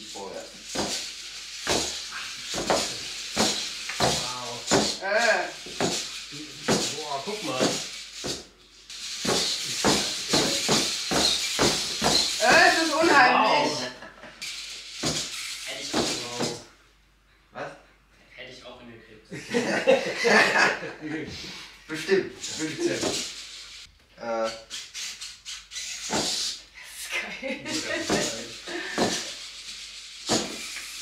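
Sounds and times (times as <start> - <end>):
servos whirring: 0.0 - 13.8, 14.4 - 16.6, 22.0 - 26.7, 27.6 - 31.0
robot feet tapping on wood: 1.7 - 5.0, 5.7 - 6.1, 9.2 - 12.8.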